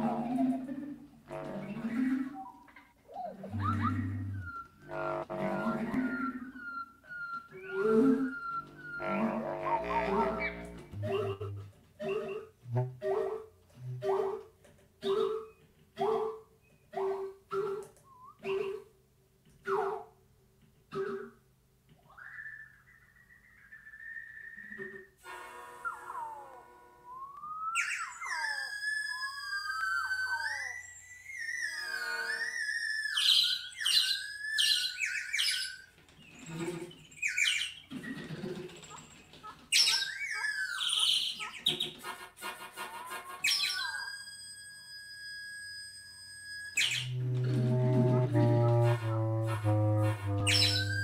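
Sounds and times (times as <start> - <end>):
whistled gliding tones: 0.0 - 13.2, 17.5 - 18.8, 22.1 - 25.2, 25.8 - 35.9, 43.0 - 51.0
low wind instrument note: 47.1 - 51.0.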